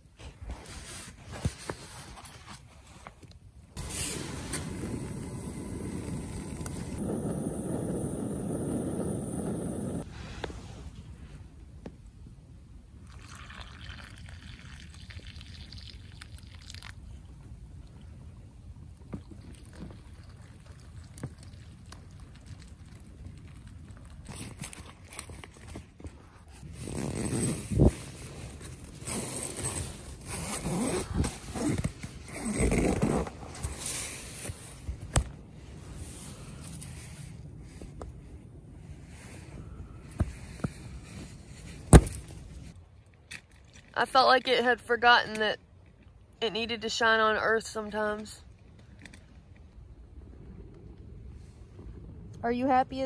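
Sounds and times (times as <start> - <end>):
hot water pouring into pouch: 13.0 - 17.1, 19.4 - 24.3.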